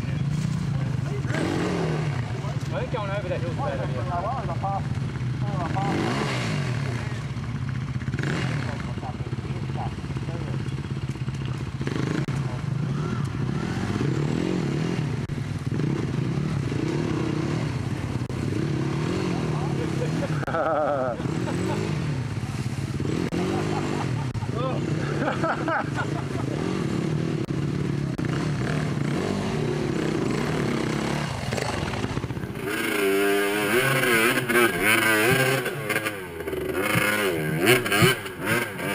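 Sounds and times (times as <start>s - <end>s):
dirt bike engines revving: 0.0s - 38.9s.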